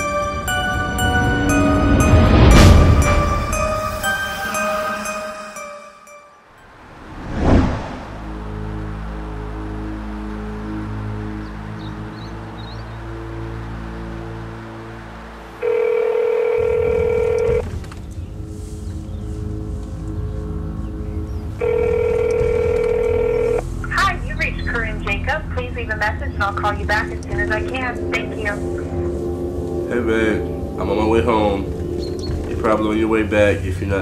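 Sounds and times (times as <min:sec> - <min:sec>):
low music drone: 0:00.0 - 0:15.8, 0:17.6 - 0:34.0
whoosh hit: 0:06.8 - 0:08.7
telephone ringback tone: 0:15.6 - 0:17.6, 0:21.6 - 0:23.6.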